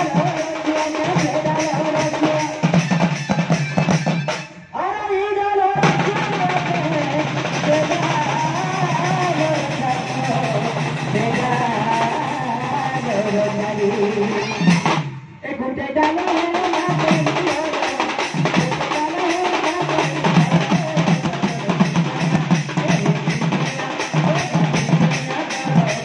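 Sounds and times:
barrel drums: 0.0s - 4.7s, 5.8s - 15.4s, 16.0s - 26.0s.

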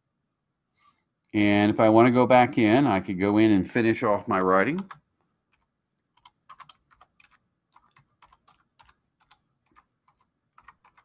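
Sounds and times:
keyboard typing: 4.3s - 11.0s.

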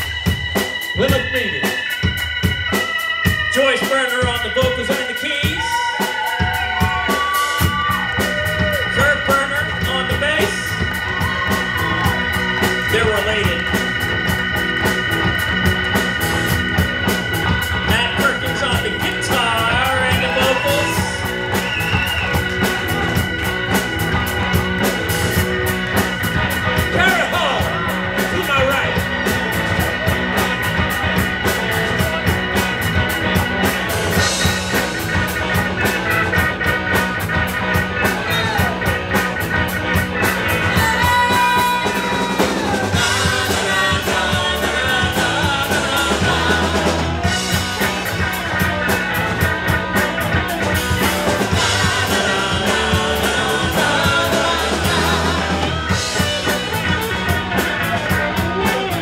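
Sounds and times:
drums: 0.0s - 59.0s
electric bass: 0.0s - 59.0s
electric guitar: 0.0s - 59.0s
organ chords: 0.0s - 59.0s.

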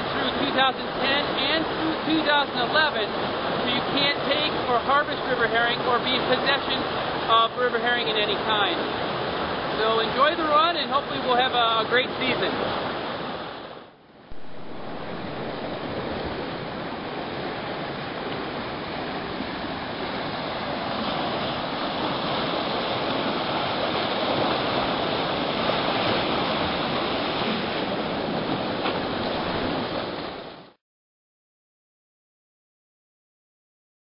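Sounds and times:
water rushing through fish ladder: 0.0s - 7.3s, 14.3s - 30.7s.

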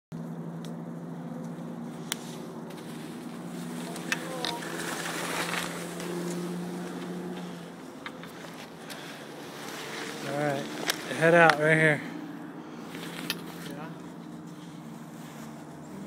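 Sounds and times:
low hum: 0.2s - 16.0s
skis hissing over snow: 2.2s - 6.1s, 9.4s - 11.2s.

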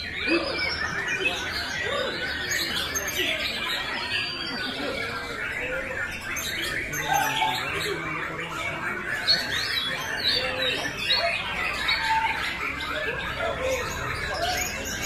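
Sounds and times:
birds singing whistled phrases: 0.0s - 15.0s.

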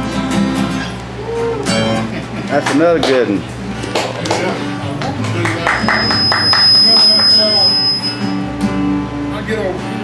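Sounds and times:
acoustic guitars strumming: 0.0s - 10.0s
electric bass line: 3.6s - 9.4s
thin high whine: 5.7s - 8.5s.

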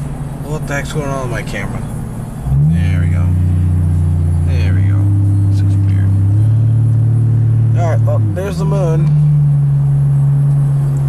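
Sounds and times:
truck engine droning: 0.0s - 11.0s.

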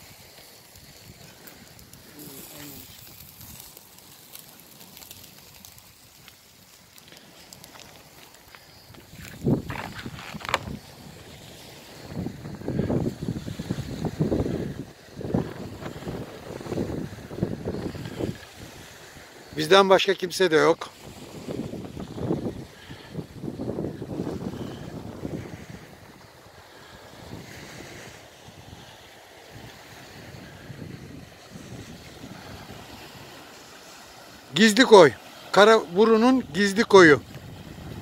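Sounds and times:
wind buffeting microphone: 0.7s - 6.3s, 8.8s - 19.6s, 20.9s - 34.5s, 36.3s - 38.0s.

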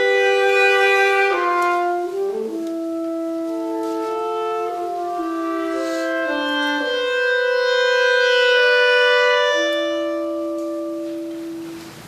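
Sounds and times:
clarinets playing: 0.0s - 12.0s.

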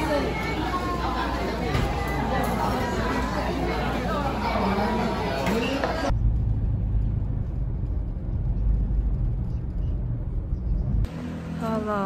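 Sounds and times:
voices talking in a restaurant: 0.0s - 6.2s
steady low rumble: 6.1s - 11.3s.

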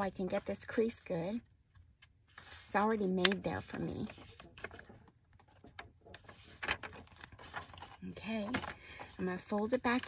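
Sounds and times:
paper rustling: 1.7s - 10.0s.

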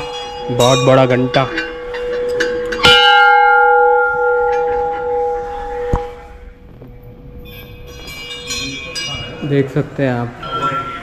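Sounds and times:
bell hum: 0.0s - 6.6s, 7.3s - 11.0s
large brass bell ringing: 0.0s - 6.6s, 7.3s - 11.0s.

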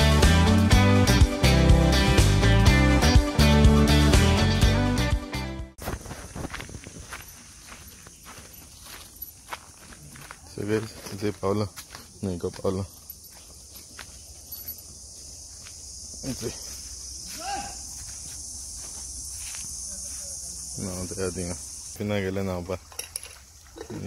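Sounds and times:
footsteps crunching on dirt path: 5.8s - 21.1s
high-pitched insect chorus: 5.8s - 24.0s.

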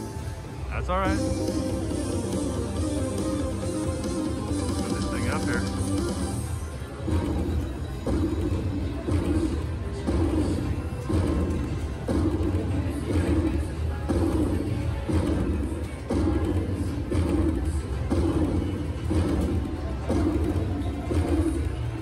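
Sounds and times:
slot machine win music: 0.0s - 22.0s.

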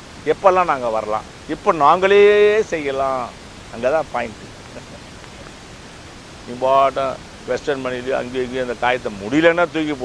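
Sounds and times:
steady background hiss: 0.0s - 10.0s
man speaking: 0.3s - 5.6s, 6.4s - 10.0s.

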